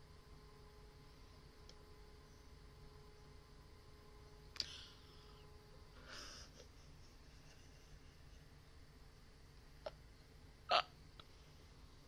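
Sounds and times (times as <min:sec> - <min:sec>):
faint click: 0:01.6 - 0:01.8.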